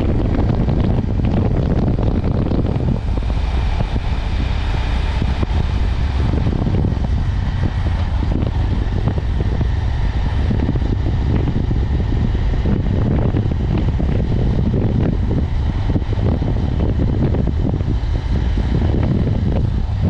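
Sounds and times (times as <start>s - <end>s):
motorcycle engine rumble: 0.0s - 20.0s
road noise: 0.0s - 20.0s
wind buffeting microphone: 0.0s - 20.0s.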